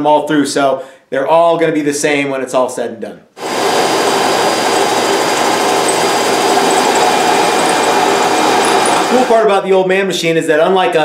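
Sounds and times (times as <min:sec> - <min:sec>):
drum sander running: 0:03.4 - 0:09.3.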